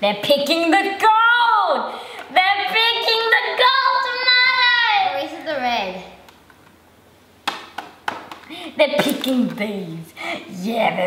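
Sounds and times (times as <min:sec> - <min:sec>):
child's voice: 0:00.8 - 0:06.2.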